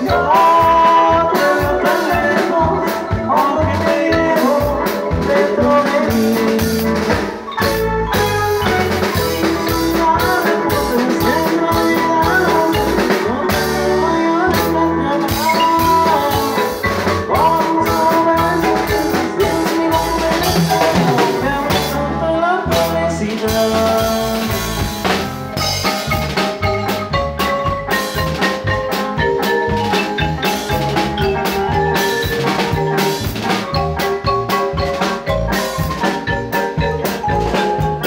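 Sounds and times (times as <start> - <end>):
congas: 0.0 - 38.0
drum kit beat: 0.0 - 38.0
electric keyboard: 0.0 - 38.0
marimbas struck with mallets: 0.0 - 38.0.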